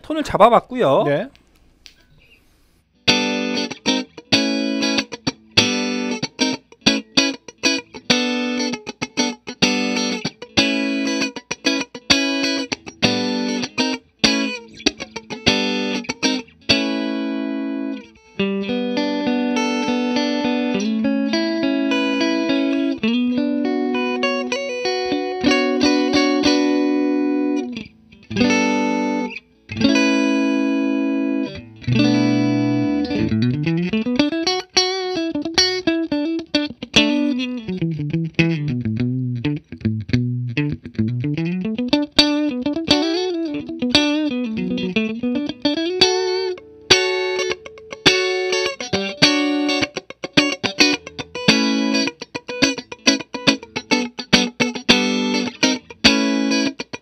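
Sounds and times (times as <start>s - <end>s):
compressed electric guitar: 1.8s - 57.0s.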